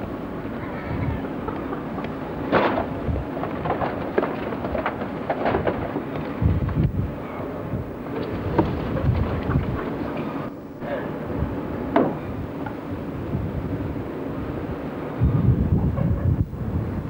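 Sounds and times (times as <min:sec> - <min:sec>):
wooden boards knocking and thumping: 0:02.5 - 0:06.8, 0:11.9 - 0:12.2.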